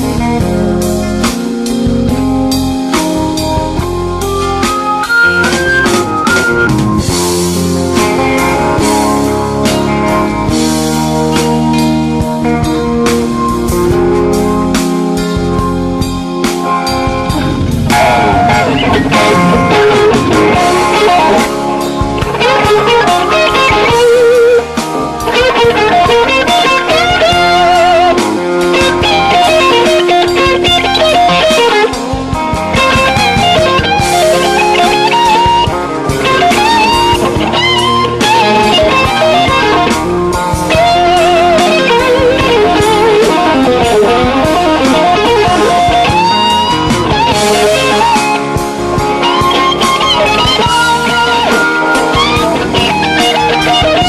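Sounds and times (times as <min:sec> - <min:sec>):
blues band backing: 0:00.0 - 0:54.0
electric guitar solo: 0:00.0 - 0:54.0.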